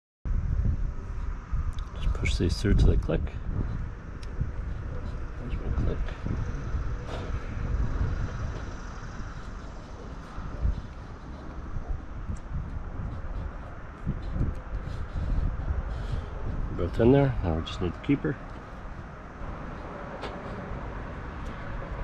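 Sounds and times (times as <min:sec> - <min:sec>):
wind rumble on microphone: 0:00.3 - 0:22.0.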